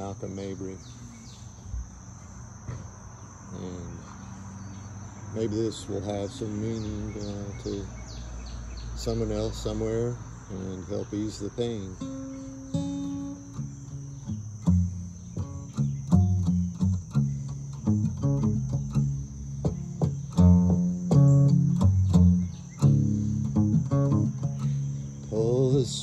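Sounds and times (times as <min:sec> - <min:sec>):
insects chirring: 0:00.0 - 0:26.0
slide acoustic guitar: 0:09.0 - 0:26.0.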